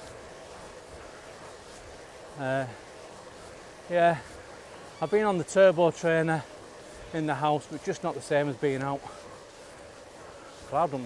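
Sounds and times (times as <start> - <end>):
bike tyres on tarmac: 0.0 - 11.0.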